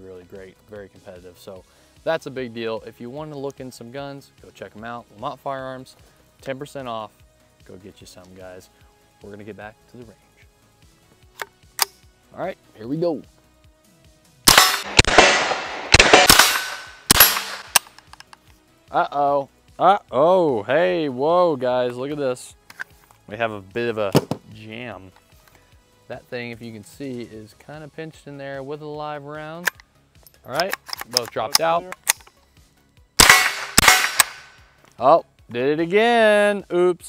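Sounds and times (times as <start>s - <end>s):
rifle shots with ringing tail: 14.5s - 17.9s, 33.2s - 34.6s.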